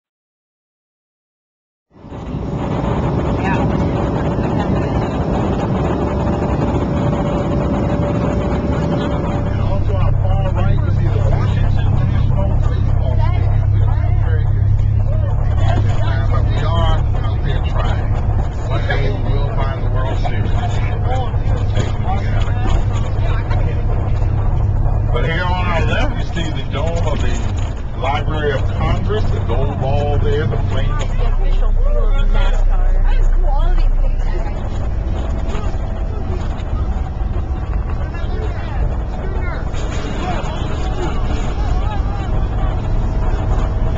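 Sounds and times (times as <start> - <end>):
bus engine drone: 1.9 - 43.9
airliner cabin noise: 2.0 - 43.9
faint steady whine: 2.0 - 43.9
people talking indistinctly: 3.0 - 43.9.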